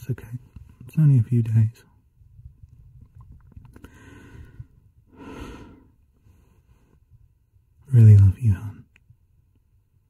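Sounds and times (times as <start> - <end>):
man breathing: 3.8 - 7.1.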